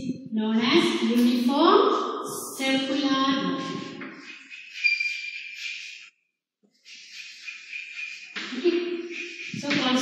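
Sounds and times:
chalk scratching on blackboard: 0:03.6 - 0:10.0
chalk squeak: 0:03.6 - 0:10.0.

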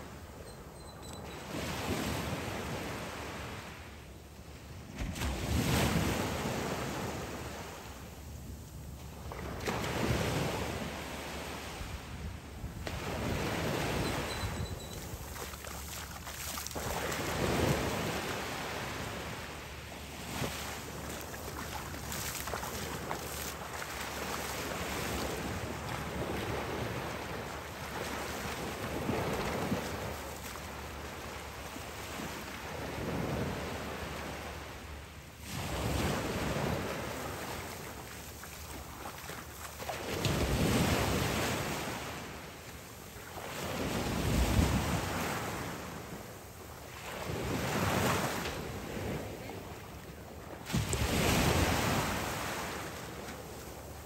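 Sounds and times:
waves breaking on a beach: 0:00.0 - 0:54.0.

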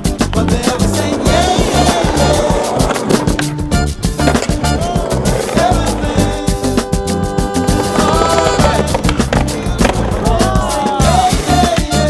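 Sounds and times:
music with steady beat: 0:00.0 - 0:12.0
skateboard wheels rolling on pavement: 0:00.0 - 0:12.0.

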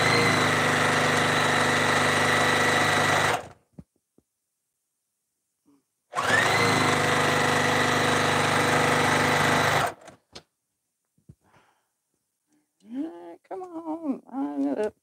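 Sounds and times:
sewing machine motor whirring: 0:00.0 - 0:03.6, 0:06.1 - 0:10.2.

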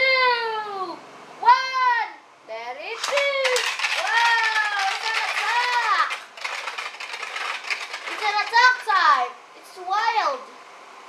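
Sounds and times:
spinning top rattling on plastic: 0:02.9 - 0:09.0.

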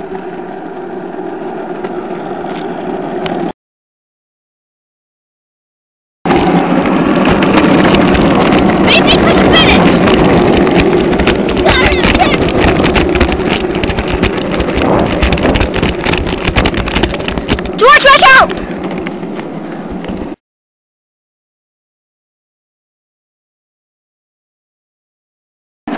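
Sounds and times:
go-kart engine rumbling: 0:00.0 - 0:03.5, 0:06.3 - 0:20.4
voices: 0:08.8 - 0:10.2, 0:11.5 - 0:12.8, 0:17.8 - 0:18.7.

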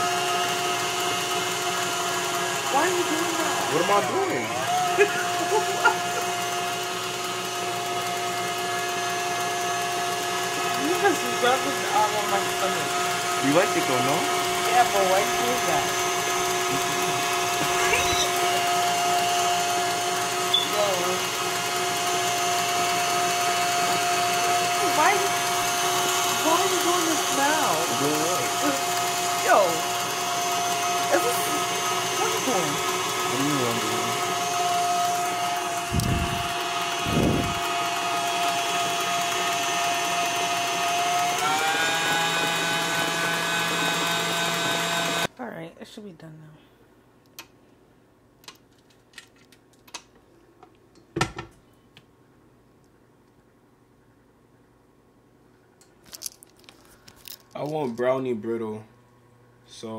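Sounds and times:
stand mixer motor hum: 0:00.0 - 0:45.3.

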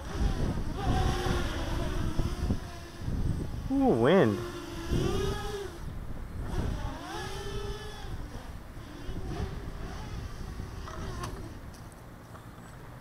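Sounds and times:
quadcopter motors whining: 0:00.0 - 0:11.9
wind buffeting microphone: 0:00.0 - 0:11.9.

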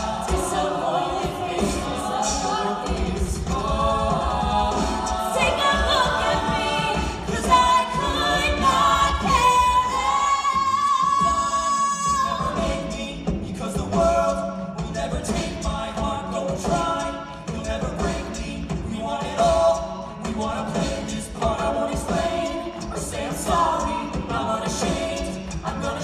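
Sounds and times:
a cappella group singing: 0:00.0 - 0:26.0
vocal percussion: 0:00.0 - 0:26.0.

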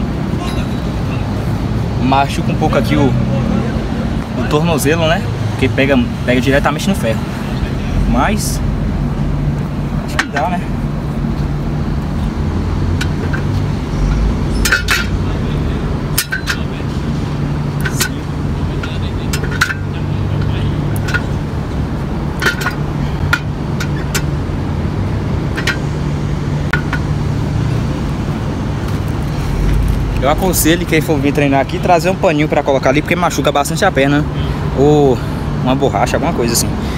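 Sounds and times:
low traffic hum: 0:00.0 - 0:36.9.

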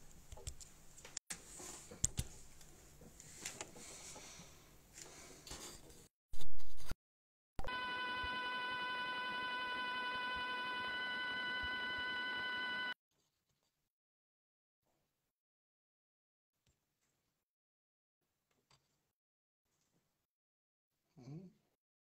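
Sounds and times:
electronic buzz with high whine: 0:07.6 - 0:13.0.

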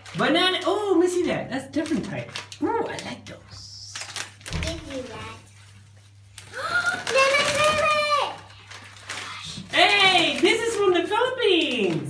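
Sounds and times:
child's voice: 0:04.6 - 0:05.5, 0:06.5 - 0:08.6.

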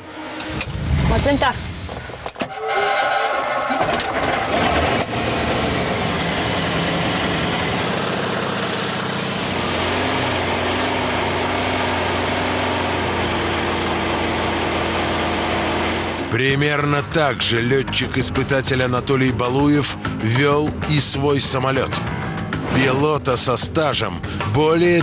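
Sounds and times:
aircraft piston engine running: 0:05.5 - 0:16.3.

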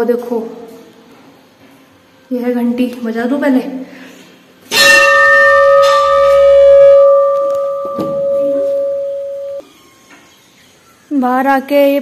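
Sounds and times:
temple bell ringing: 0:04.7 - 0:09.6.

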